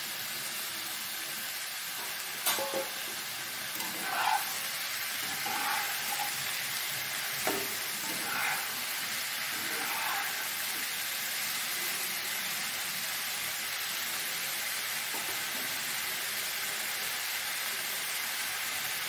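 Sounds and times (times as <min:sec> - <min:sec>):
mushrooms sizzling in hot oil: 0:00.0 - 0:19.0
metal spatula scraping a wok: 0:02.0 - 0:11.0.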